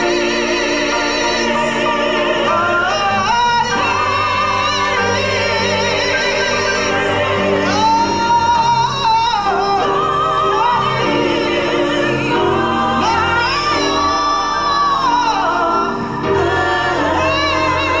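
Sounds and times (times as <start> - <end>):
women's vocal ensemble singing: 0.0 - 18.0.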